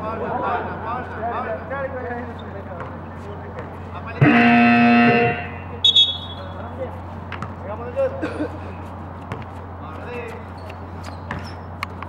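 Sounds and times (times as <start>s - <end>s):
game buzzer tone: 4.2s - 6.4s
referee's whistle blasts: 4.2s - 6.6s.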